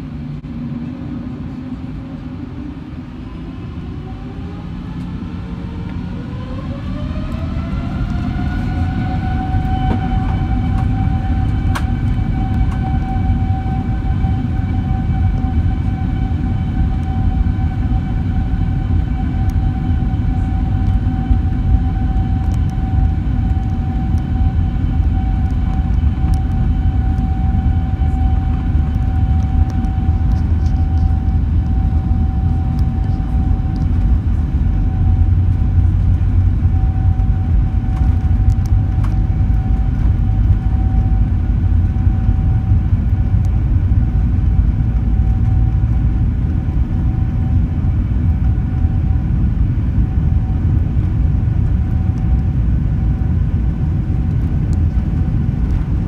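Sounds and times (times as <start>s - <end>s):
high jet engine whine: 0.0s - 56.0s
low rumble of wheels and airframe: 0.0s - 56.0s.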